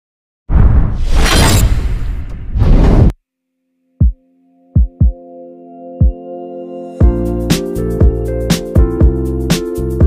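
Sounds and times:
sudden impact hit: 0.5 - 3.1
shattering crash: 1.0 - 3.1.

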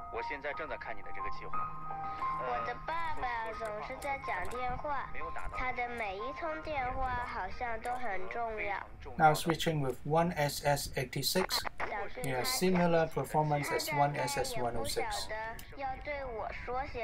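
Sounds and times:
radio music with held notes: 0.0 - 16.8.

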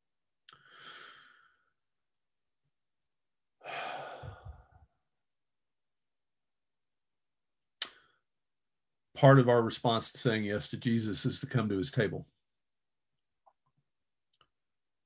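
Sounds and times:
man breathing: 0.5 - 1.8, 3.6 - 4.9.

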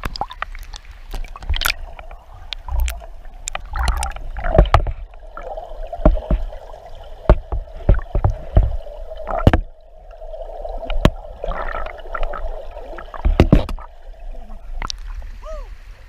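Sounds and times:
sharp clicks and knocks: 0.0 - 5.1, 7.2 - 9.7, 13.2 - 13.8
bubbling: 0.0 - 15.4
muffled underwater river water: 0.0 - 16.0.

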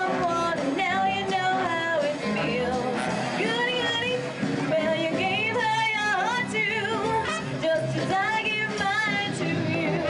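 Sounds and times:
big band swing music: 0.0 - 10.0.

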